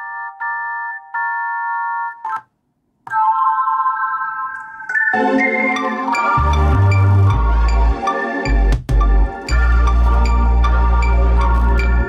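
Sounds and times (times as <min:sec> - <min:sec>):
held synth chords: 0:04.9 - 0:12.0.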